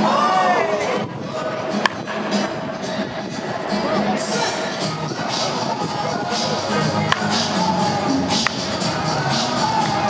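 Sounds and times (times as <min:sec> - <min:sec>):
background music: 0:00.0 - 0:10.0
baseball bat hitting ball: 0:01.8 - 0:02.3, 0:07.0 - 0:07.5.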